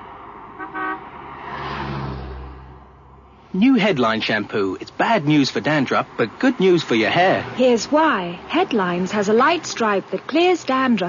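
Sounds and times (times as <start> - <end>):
car passing: 0.0 - 11.0
road noise: 0.0 - 11.0
car horn toot: 0.6 - 1.1.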